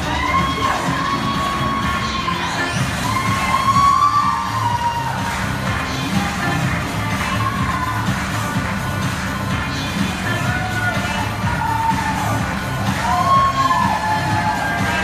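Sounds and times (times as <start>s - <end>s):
audience cheering and screaming: 0.0s - 8.4s, 10.4s - 15.0s
background music: 0.0s - 15.0s.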